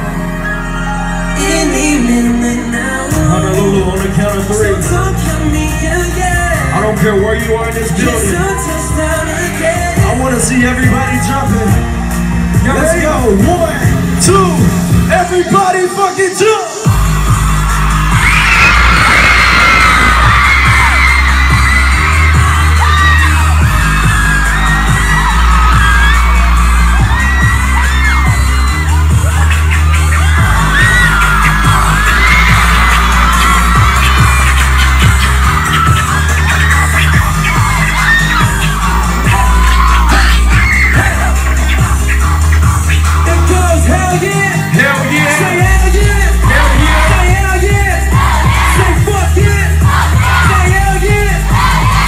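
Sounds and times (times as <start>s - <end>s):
crowd screaming and cheering: 0.0s - 52.0s
live pop music with heavy bass: 0.0s - 52.0s.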